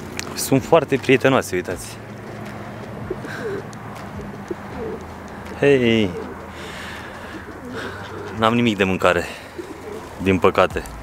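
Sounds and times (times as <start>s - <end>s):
faint background noise: 0.0s - 11.0s
birds cooing: 2.2s - 10.4s.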